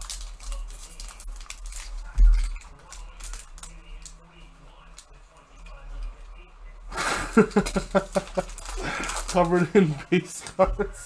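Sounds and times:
foil wrapper crinkling: 0:00.0 - 0:05.2, 0:07.4 - 0:10.1
man laughing: 0:06.9 - 0:11.0.

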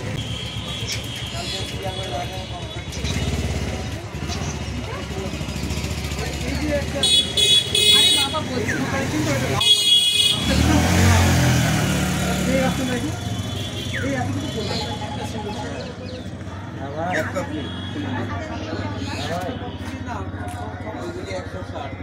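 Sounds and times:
background chatter: 0:00.0 - 0:22.0
motorcycle engine passing: 0:10.3 - 0:15.3.

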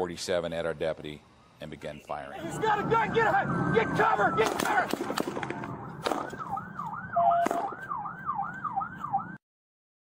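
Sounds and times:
police siren yelping: 0:02.2 - 0:09.4
sharp crack: 0:04.4 - 0:07.9.

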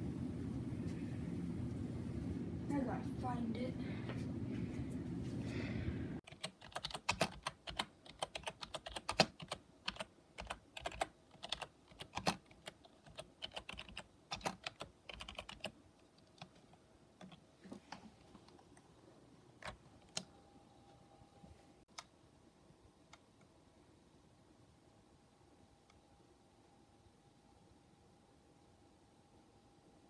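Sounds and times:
steady low rumble: 0:00.0 - 0:06.2
typing on computer keyboard: 0:06.2 - 0:18.1.

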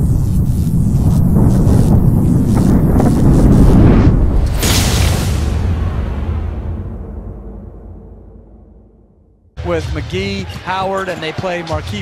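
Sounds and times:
deep rumble: 0:00.0 - 0:09.6.

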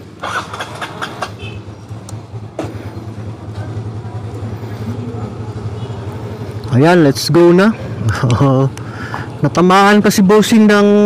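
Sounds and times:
motorcycle engine starting and idling: 0:00.0 - 0:06.9.

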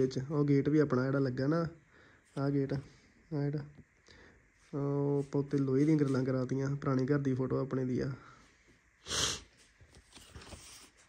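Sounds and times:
snort-like sniff: 0:09.0 - 0:09.5.

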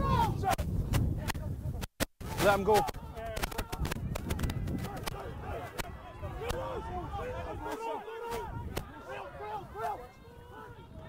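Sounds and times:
people shouting: 0:04.5 - 0:11.0.

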